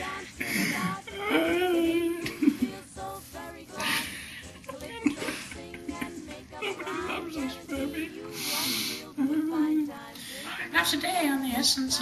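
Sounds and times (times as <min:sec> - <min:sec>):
person's wavering wordless voice: 0:00.4 - 0:02.4.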